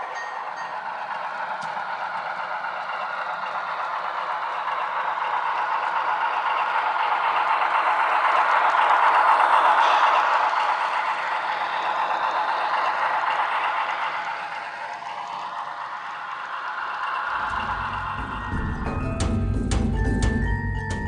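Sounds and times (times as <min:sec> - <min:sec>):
model train rattling on track: 0:00.0 - 0:21.0.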